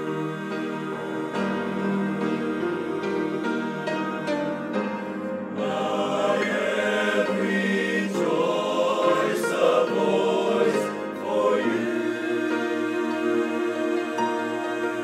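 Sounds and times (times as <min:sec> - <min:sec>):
male choir singing: 0:00.0 - 0:15.0.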